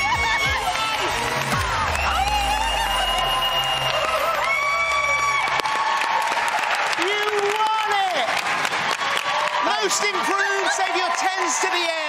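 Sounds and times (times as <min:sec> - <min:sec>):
low bass line music: 0:00.0 - 0:05.6
high shouts: 0:00.0 - 0:08.4
audience applauding and cheering: 0:00.0 - 0:12.0.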